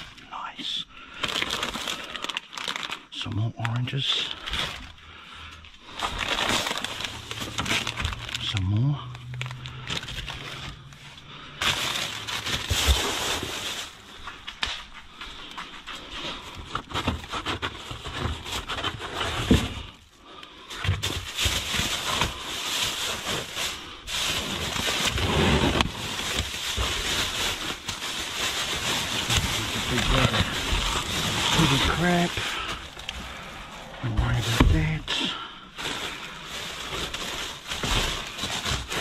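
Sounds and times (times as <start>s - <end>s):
plastic bags crinkling: 1.0s - 39.0s.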